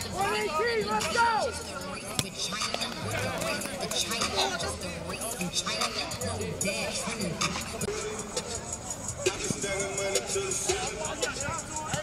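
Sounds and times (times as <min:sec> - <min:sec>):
players shouting: 0:00.0 - 0:04.9, 0:09.2 - 0:12.0.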